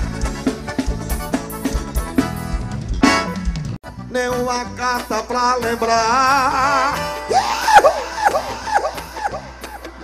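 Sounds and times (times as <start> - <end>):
drum kit beat: 0.0 - 10.0
live band playing: 0.0 - 10.0.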